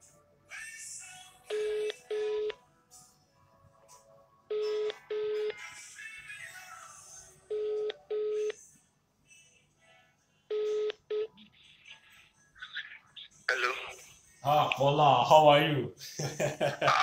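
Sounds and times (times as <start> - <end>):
telephone ringback tone: 4.5 - 5.6, 7.5 - 8.6, 10.5 - 11.4.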